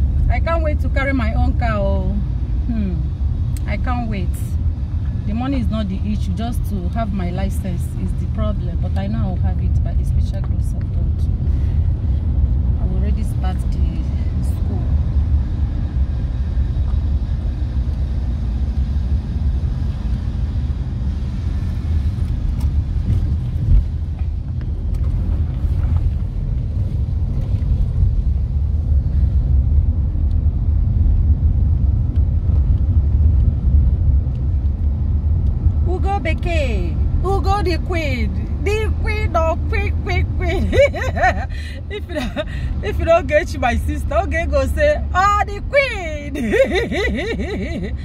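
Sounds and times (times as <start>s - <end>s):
car cabin engine and road rumble: 0.0s - 48.0s.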